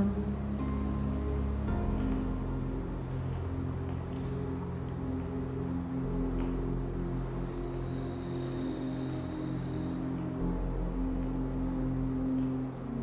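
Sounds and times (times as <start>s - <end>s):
low drone tones: 0.0s - 13.0s.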